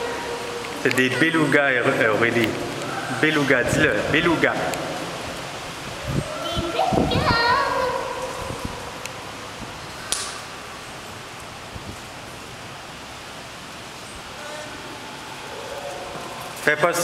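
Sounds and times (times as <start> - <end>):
background hiss and murmur: 0.0 - 17.0
sharp click: 10.1 - 10.4.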